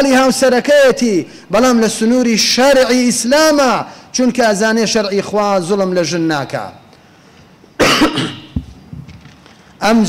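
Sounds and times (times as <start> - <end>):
man coughing: 7.8 - 8.6.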